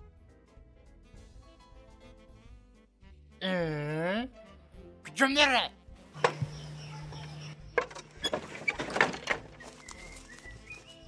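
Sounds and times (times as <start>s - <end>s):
man shouting: 5.1s - 5.7s
sharp knocks and clatters: 7.7s - 9.8s.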